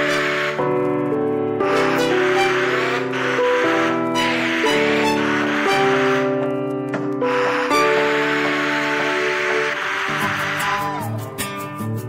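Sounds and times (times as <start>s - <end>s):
held music chords: 0.0s - 12.0s.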